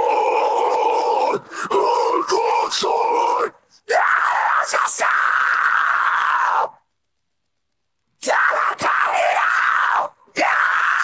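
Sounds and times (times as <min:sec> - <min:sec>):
harsh screamed vocal: 0:00.0 - 0:06.8, 0:08.2 - 0:11.0.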